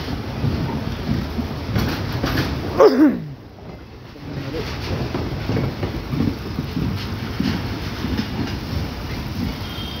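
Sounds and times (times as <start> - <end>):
train wheels rumbling and clattering: 0.0 - 10.0.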